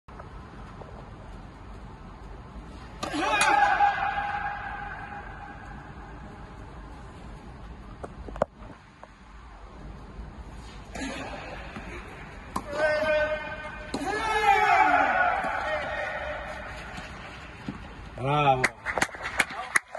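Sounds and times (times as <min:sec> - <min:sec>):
loud drawn-out shout: 0:03.0 - 0:05.8, 0:12.6 - 0:16.9.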